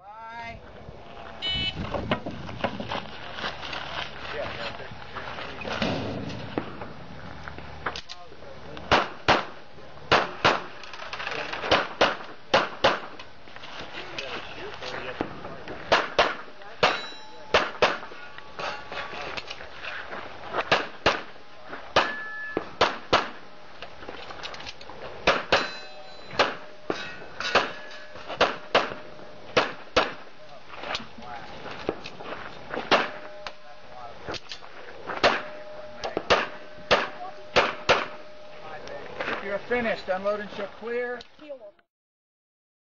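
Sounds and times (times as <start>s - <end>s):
pistol shots: 8.9s - 10.8s, 11.6s - 13.2s, 15.9s - 18.2s, 20.7s - 23.4s, 25.2s - 30.3s, 32.9s - 33.4s, 35.2s - 38.4s
metallic ring: 16.7s - 19.4s, 22.0s - 22.8s, 25.5s - 28.4s, 33.0s - 40.0s.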